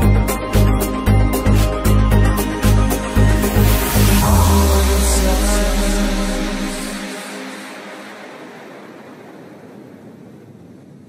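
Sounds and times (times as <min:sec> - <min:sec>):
hiss-like wash of sound: 0:02.6 - 0:09.8.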